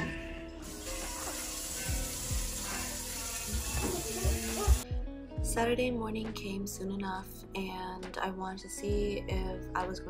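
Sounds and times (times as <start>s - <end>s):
tap running into sink: 0.8s - 2.6s, 3.4s - 4.8s.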